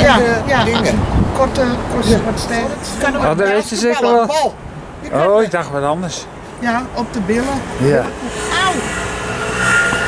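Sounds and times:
vehicle engine humming with whine: 8.1s - 10.0s.

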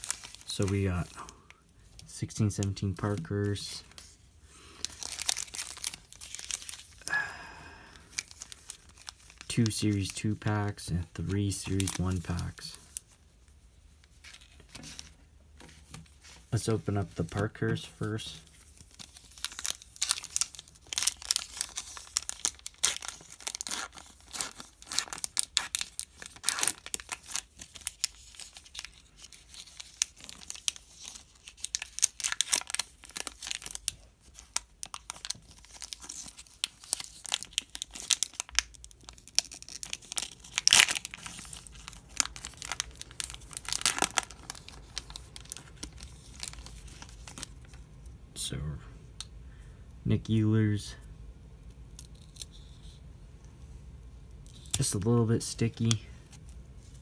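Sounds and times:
plastic wrapper tearing: 0.0s - 4.1s, 4.7s - 7.2s, 8.0s - 13.2s, 16.6s - 47.8s, 51.9s - 53.0s
plastic wrapper crinkling: 0.0s - 48.2s.

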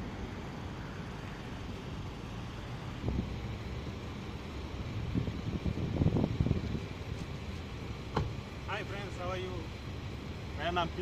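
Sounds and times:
wind rumbling on microphone: 2.9s - 3.8s, 4.8s - 7.7s.

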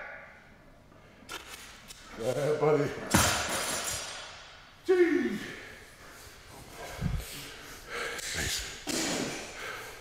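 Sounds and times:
barbell crashing onto floor: 3.1s - 4.4s.

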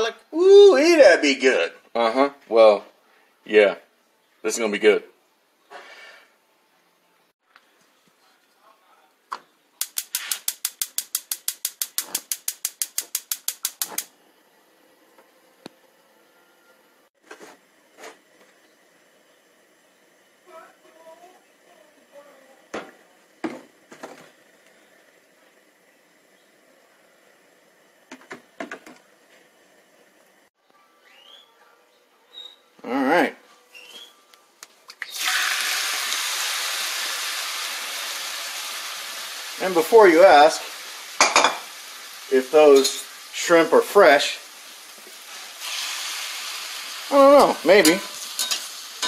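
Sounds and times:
spark igniter clicking rapidly: 9.8s - 14.1s.

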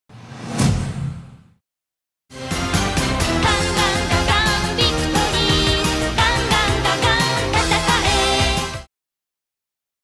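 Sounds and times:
whoosh with a hit: 0.1s - 1.6s.

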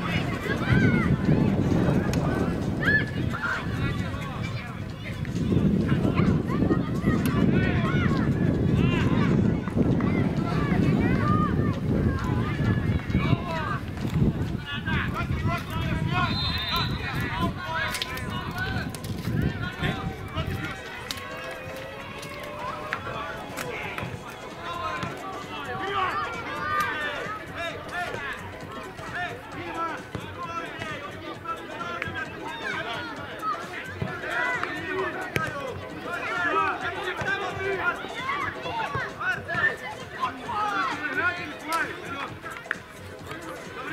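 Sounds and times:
children shouting during play: 0.0s - 13.9s, 14.6s - 42.6s.

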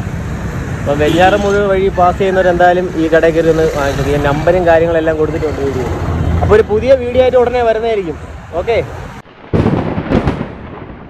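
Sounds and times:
loud thunder-like rumbling: 9.3s - 11.0s.

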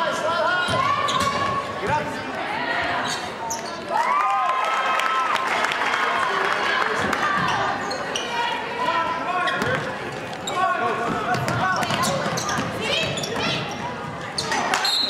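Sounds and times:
crowd voices and shouts: 0.0s - 15.0s.

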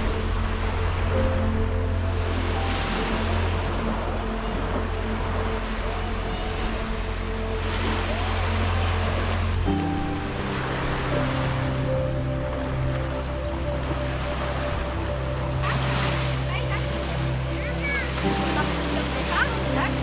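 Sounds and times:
small waves washing onto beach: 0.0s - 20.0s
soft background music: 0.0s - 20.0s.

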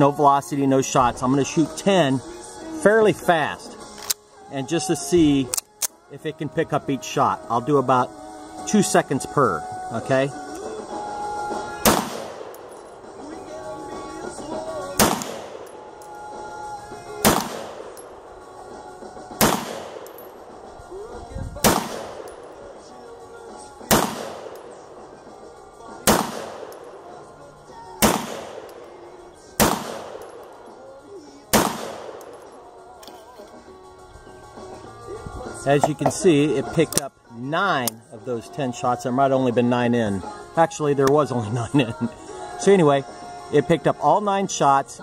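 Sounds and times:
echoing gunshots: 11.6s - 16.2s, 16.9s - 20.8s, 21.6s - 22.9s, 23.7s - 30.8s, 31.5s - 32.6s
sharp crack: 11.8s - 13.2s, 14.9s - 15.8s, 17.2s - 18.1s, 19.4s - 20.7s, 21.6s - 22.6s, 23.8s - 25.2s, 26.0s - 27.1s, 28.0s - 29.0s, 29.6s - 30.7s, 31.5s - 32.6s.

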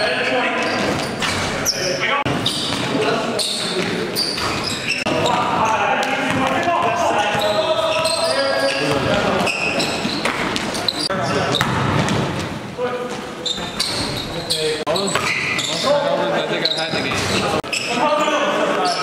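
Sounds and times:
players' voices in a gymnasium: 0.0s - 19.0s
ball bouncing on hardwood floor: 11.6s - 12.5s.

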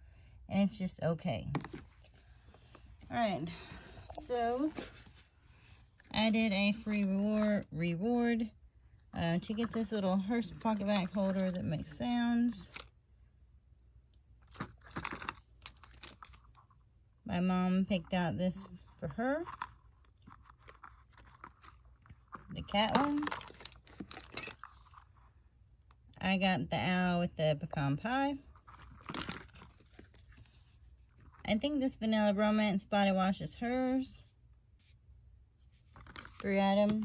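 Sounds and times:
plastic packaging crinkling: 14.4s - 16.8s, 18.8s - 25.2s, 28.5s - 31.4s, 35.8s - 37.0s.

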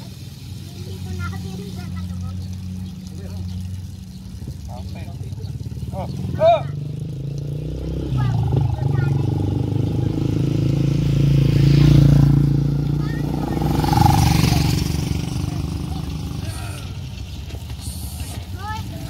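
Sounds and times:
motorcycles riding past: 0.7s - 19.0s.

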